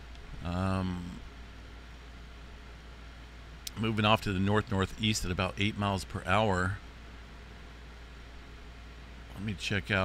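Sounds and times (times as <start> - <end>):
background hiss: 0.0 - 10.0
low constant hum: 0.0 - 10.0.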